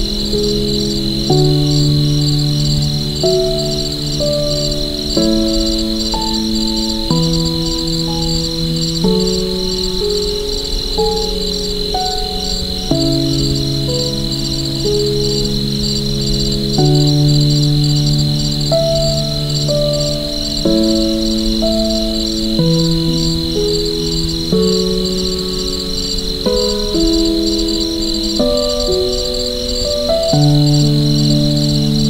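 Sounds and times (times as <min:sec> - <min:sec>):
crickets chirping: 0:00.0 - 0:32.0
soft piano chords: 0:00.0 - 0:32.0.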